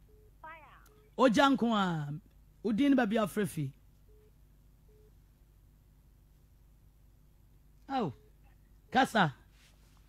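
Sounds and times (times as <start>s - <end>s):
faint telephone line beeps: 0.0s - 1.2s, 4.0s - 5.3s, 7.9s - 9.1s.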